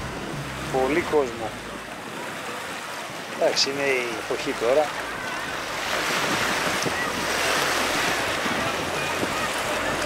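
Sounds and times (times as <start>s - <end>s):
small waves washing on shore: 0.0s - 10.0s
wind rushing over microphone: 5.0s - 10.0s.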